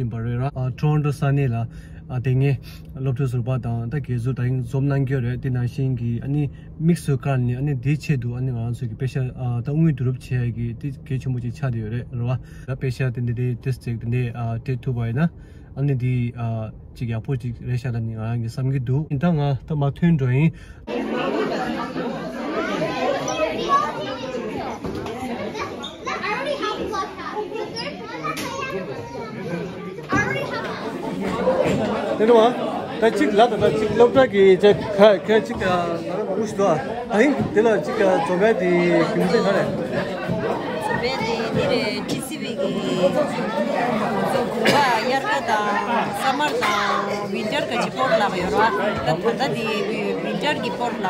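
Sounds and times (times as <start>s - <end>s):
chatter of many voices: 20.8s - 51.0s
children playing: 20.9s - 51.0s
woman talking: 40.9s - 43.2s.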